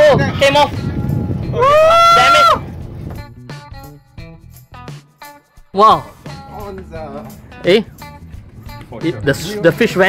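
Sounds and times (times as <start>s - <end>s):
loud high cry of dismay: 1.6s - 2.6s.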